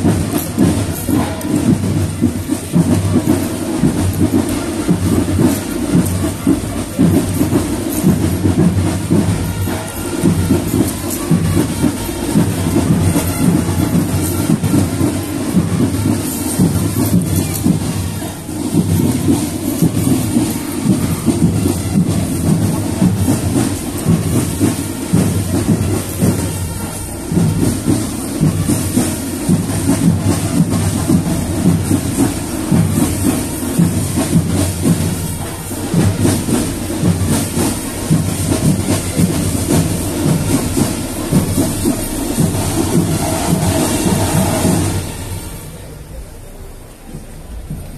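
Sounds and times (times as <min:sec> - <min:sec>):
rapid drumming: 0:00.0 - 0:45.8
marching band playing: 0:00.0 - 0:47.9.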